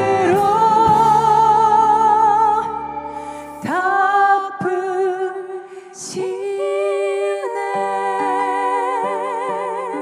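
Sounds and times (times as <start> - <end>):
women singing in harmony: 0.0 - 10.0.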